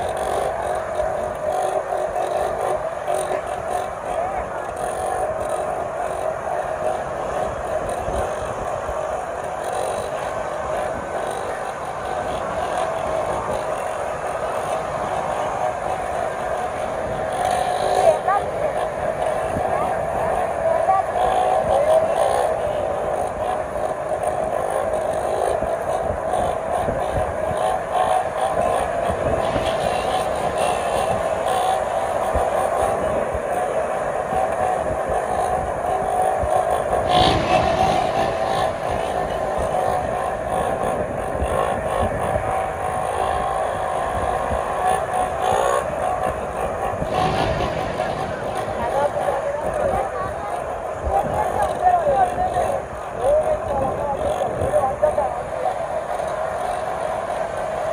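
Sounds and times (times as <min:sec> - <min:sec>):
motorcycle engines wavering: 0:00.0 - 0:57.9.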